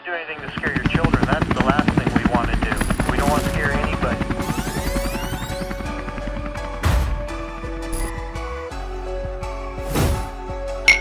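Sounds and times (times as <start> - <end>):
person talking: 0.0 - 4.4.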